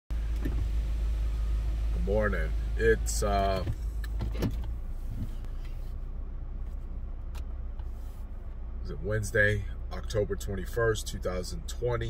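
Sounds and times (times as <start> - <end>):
car engine idling: 0.1 - 12.0.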